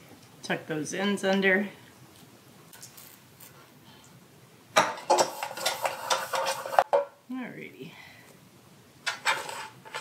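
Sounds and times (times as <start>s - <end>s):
dough scraping rustle: 5.1s - 6.9s.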